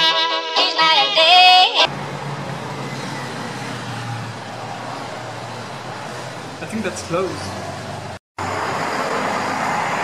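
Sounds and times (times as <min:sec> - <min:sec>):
street traffic noise: 0:01.2 - 0:10.0.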